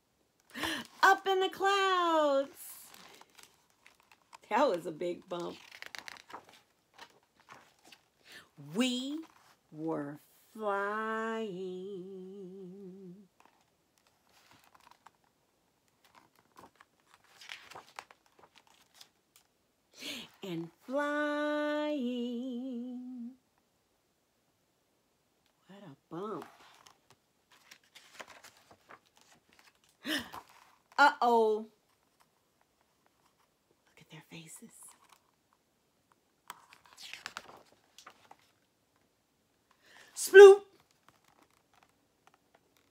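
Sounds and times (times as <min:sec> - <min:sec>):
paper pages rustling: 0:00.6 - 0:08.3, 0:08.9 - 0:09.7, 0:13.4 - 0:19.5, 0:26.3 - 0:31.0, 0:34.8 - 0:35.5, 0:36.4 - 0:39.1, 0:40.7 - 0:42.9
person humming: 0:11.6 - 0:13.3, 0:22.0 - 0:23.4
soft whisper: 0:33.2 - 0:35.2.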